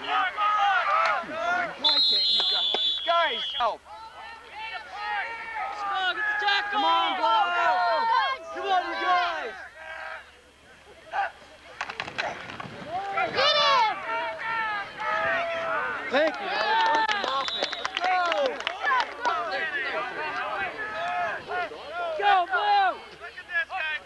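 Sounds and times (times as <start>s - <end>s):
shouting voices: 0.0s - 11.5s, 12.1s - 24.0s
referee's whistle: 1.8s - 3.8s, 17.1s - 18.1s.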